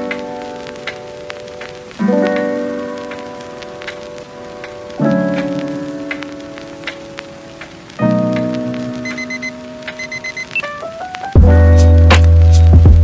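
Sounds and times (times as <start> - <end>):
scattered clicks: 0.0 - 10.8.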